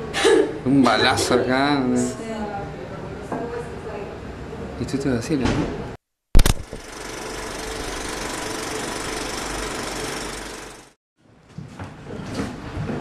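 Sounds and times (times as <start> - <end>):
machine whirring with hum: 6.4 - 11.0.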